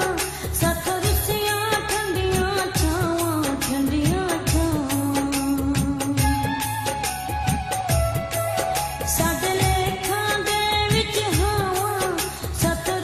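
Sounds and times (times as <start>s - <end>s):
woman singing: 0.0s - 7.9s, 8.6s - 13.0s.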